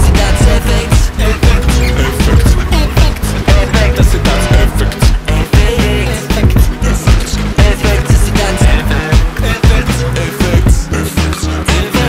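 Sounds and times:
hip-hop music with heavy bass: 0:00.0 - 0:12.0.

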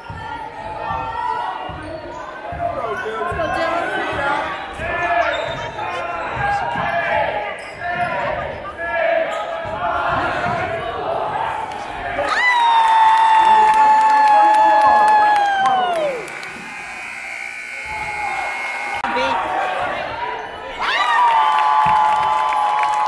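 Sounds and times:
crowd chatter: 0:00.0 - 0:12.5, 0:14.4 - 0:21.3
loud sustained tone: 0:16.0 - 0:19.1.

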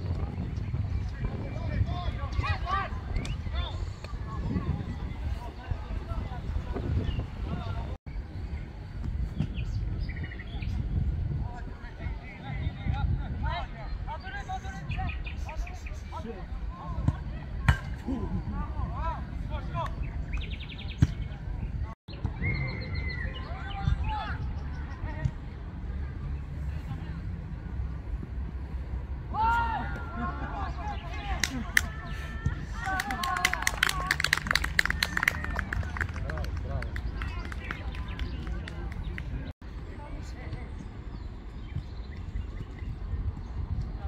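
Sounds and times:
low wind rumble on microphone: 0:00.0 - 0:44.0
players and spectators shouting: 0:29.3 - 0:34.1.

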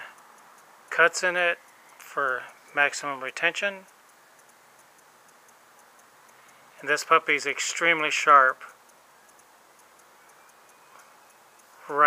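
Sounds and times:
faint regular ticking: 0:00.0 - 0:12.0
man speaking: 0:00.9 - 0:03.9, 0:06.8 - 0:08.8.

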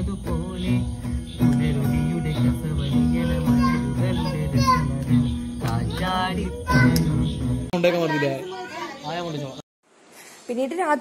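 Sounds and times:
children talking and calling out: 0:02.9 - 0:05.3, 0:05.9 - 0:09.5.

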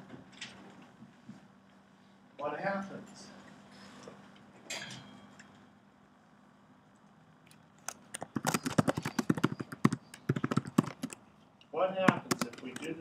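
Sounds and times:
computer keyboard typing: 0:07.8 - 0:11.2, 0:12.0 - 0:13.0.

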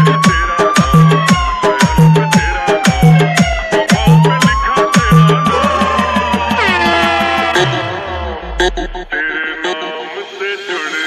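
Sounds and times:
bass-heavy remix music: 0:00.0 - 0:11.0.

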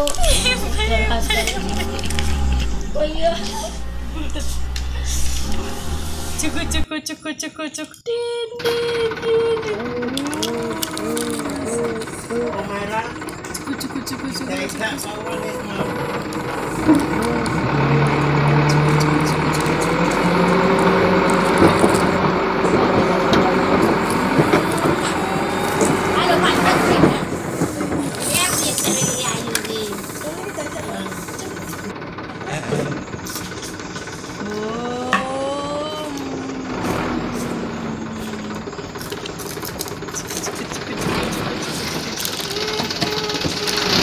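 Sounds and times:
person humming: 0:08.2 - 0:12.7, 0:15.1 - 0:26.2, 0:34.4 - 0:38.9, 0:40.5 - 0:44.0
plastic toys clicking: 0:09.8 - 0:17.7, 0:27.6 - 0:30.2, 0:38.6 - 0:44.0.

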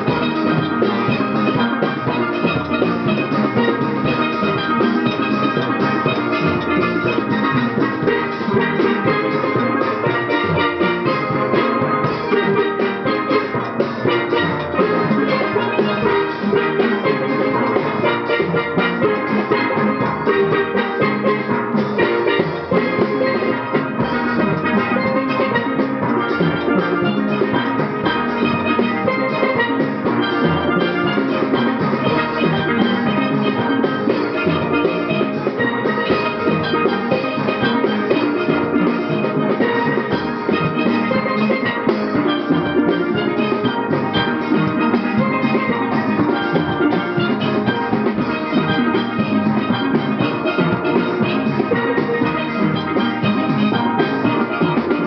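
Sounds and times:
steel band playing: 0:00.0 - 0:55.0.

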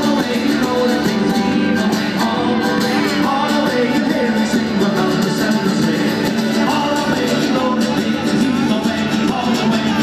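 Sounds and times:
mandolin: 0:00.0 - 0:10.0
strummed guitars: 0:00.0 - 0:10.0.

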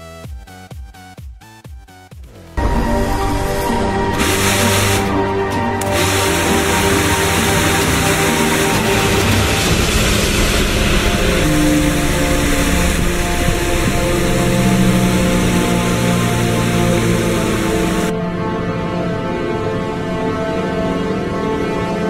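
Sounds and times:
background music: 0:00.0 - 0:22.0
small motor fan whirring: 0:04.2 - 0:05.1, 0:05.8 - 0:18.1.

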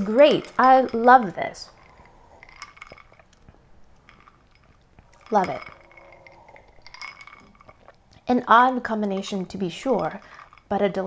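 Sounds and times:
person sipping and swallowing: 0:01.7 - 0:08.3.

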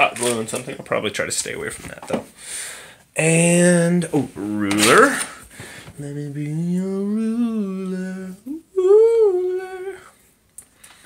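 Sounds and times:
man humming: 0:06.0 - 0:10.2.

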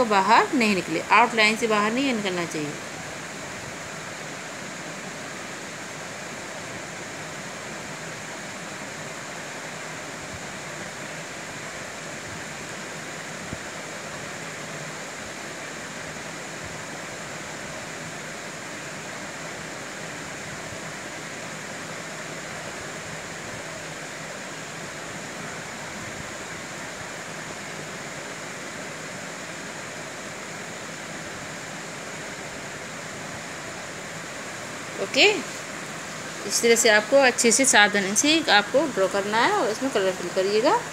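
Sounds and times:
steady background hiss: 0:00.0 - 0:40.9.

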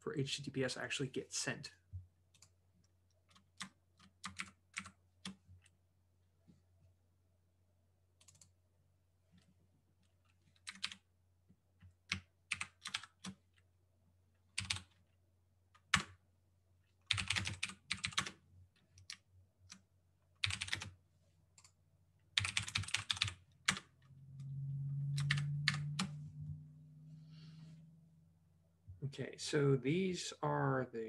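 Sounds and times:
typing on a keyboard: 0:03.3 - 0:05.4, 0:10.5 - 0:11.0, 0:11.8 - 0:13.5, 0:14.6 - 0:15.0, 0:17.1 - 0:19.8, 0:20.4 - 0:20.9, 0:22.4 - 0:23.9.

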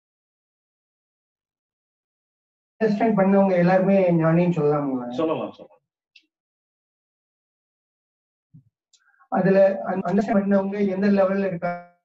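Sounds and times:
man speaking: 0:02.8 - 0:05.6, 0:09.3 - 0:11.8.

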